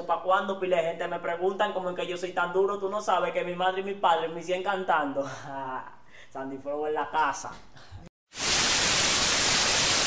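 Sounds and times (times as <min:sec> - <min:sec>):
television static hiss: 0:08.4 - 0:10.0.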